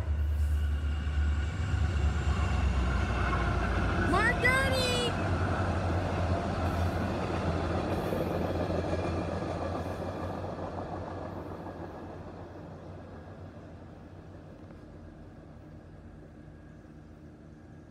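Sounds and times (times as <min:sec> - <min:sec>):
train passing with low rumble: 0:00.0 - 0:17.9
train wheel noise: 0:00.0 - 0:17.9.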